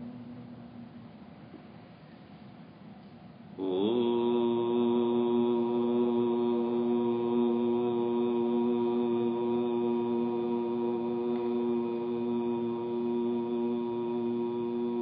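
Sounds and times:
man chanting a long note: 3.6 - 15.0.

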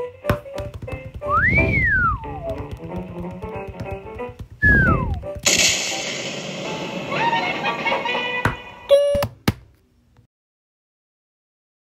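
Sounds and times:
descending falling whistle: 1.3 - 2.4, 4.6 - 5.2
cartoon crash-boom: 4.8 - 8.8.

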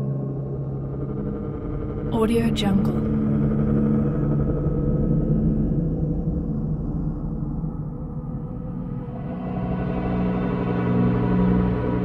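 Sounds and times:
ambient drone music: 0.0 - 12.0
person speaking: 2.2 - 3.0.

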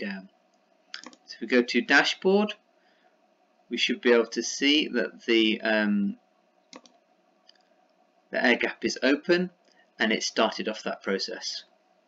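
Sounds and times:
computer mouse click: 0.5 - 1.3, 6.7 - 8.0.

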